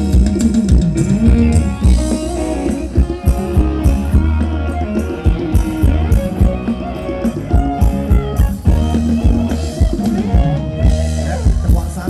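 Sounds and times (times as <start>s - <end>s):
drum kit steady beat: 0.0s - 12.0s
electric guitar melody: 0.0s - 12.0s
heavy bass line: 0.0s - 12.0s.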